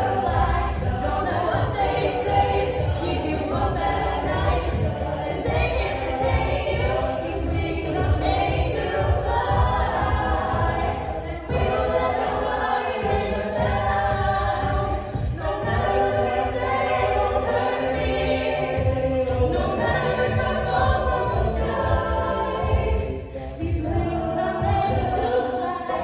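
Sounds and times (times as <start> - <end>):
a cappella group singing: 0.0 - 26.0
vocal percussion beat: 0.0 - 26.0.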